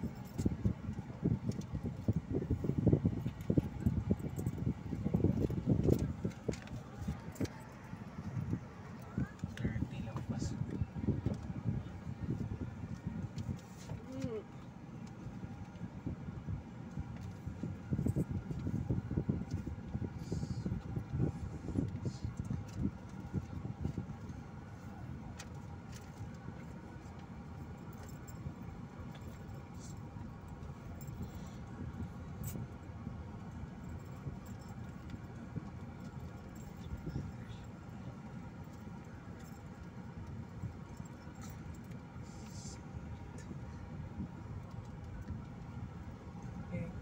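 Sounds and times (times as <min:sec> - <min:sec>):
light clicks and rattles: 0:00.0 - 0:16.1, 0:16.8 - 0:47.0
engine and tyre rumble: 0:00.0 - 0:47.0.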